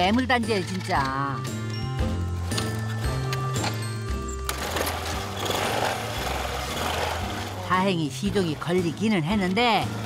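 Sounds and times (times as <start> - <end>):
background music: 0.0 - 10.0
motorcycle engine starting and running: 2.4 - 10.0.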